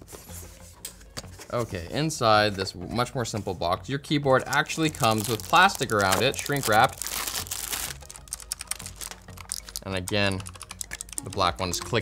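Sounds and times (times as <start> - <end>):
plastic wrap rustling and crinkling: 4.7 - 9.9.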